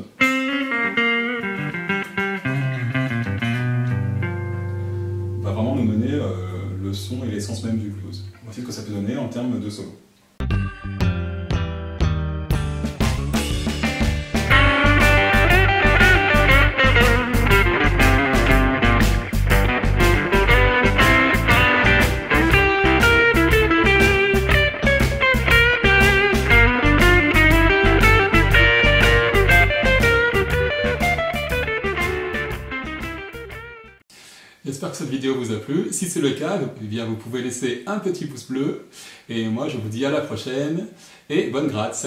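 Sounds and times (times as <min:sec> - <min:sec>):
electric blues guitar solo: 0:00.1 - 0:06.0, 0:13.8 - 0:34.0
bass: 0:02.4 - 0:08.3, 0:10.4 - 0:34.0
drum beat: 0:12.5 - 0:33.6.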